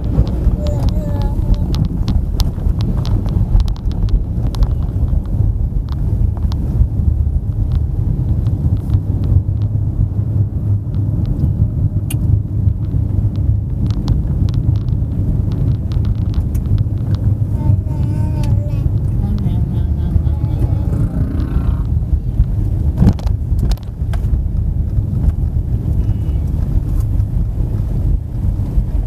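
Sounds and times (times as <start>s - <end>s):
vehicle rumble from inside cabin: 0.0s - 29.0s
light ticks and rattles: 10.9s - 28.8s.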